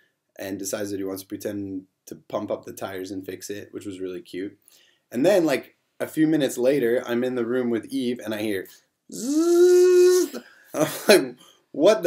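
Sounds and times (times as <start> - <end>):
man imitating power drill: 9.1 - 10.4.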